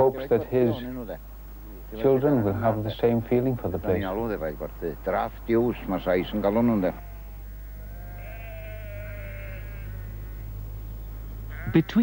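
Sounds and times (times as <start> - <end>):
sheep bleating: 6.1 - 10.5, 11.5 - 12.0.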